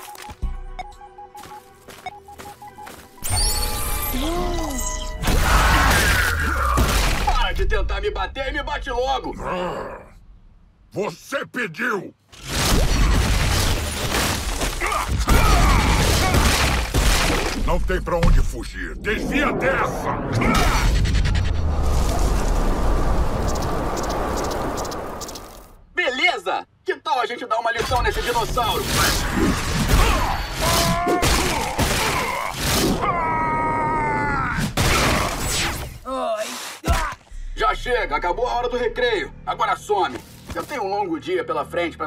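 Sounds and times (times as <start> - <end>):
rushing rumbling wind blast: 18.9 - 25.2
cartoon heavy crash with rumble: 20.3 - 23.4.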